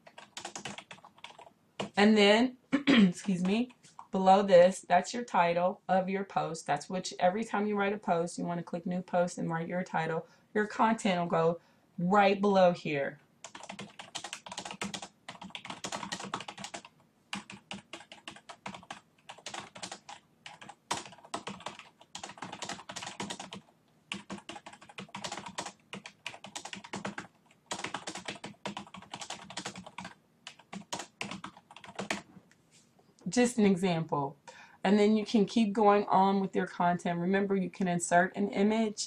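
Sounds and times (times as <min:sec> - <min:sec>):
typing on computer keyboard: 0:00.0 - 0:02.0, 0:13.4 - 0:32.3.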